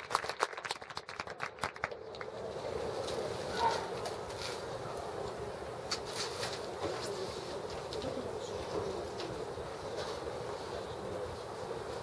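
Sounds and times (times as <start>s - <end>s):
faint crowd ambience: 1.2s - 12.0s.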